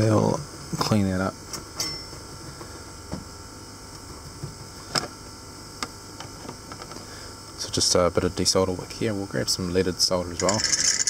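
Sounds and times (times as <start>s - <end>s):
faint steady hum: 0.0s - 11.0s
tools clicking and tapping: 10.4s - 11.0s.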